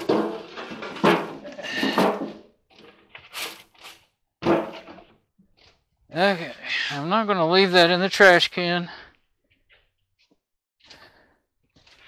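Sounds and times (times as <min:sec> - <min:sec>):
rustling: 0:00.0 - 0:05.9.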